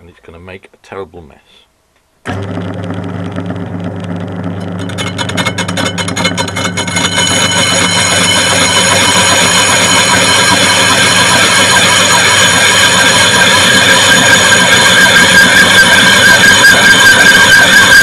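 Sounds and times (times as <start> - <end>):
harsh metal cutting noise: 2.3 - 18.0
lathe humming: 2.3 - 18.0
lathe tool ticking: 2.3 - 18.0
high ringing tones from disc: 3.3 - 18.0.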